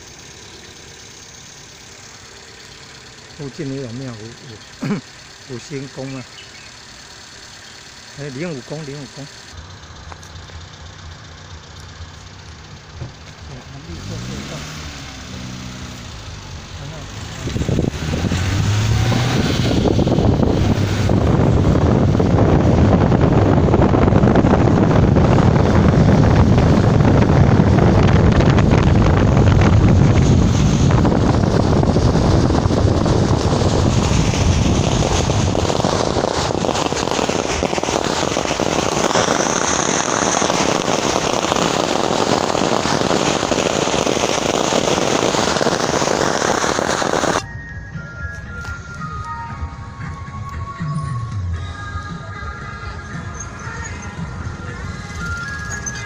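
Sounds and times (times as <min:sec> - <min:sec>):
firecrackers crackling: 0:00.0 - 0:10.7, 0:11.6 - 0:47.5, 0:52.1 - 0:56.0
car engine running: 0:00.0 - 0:56.0.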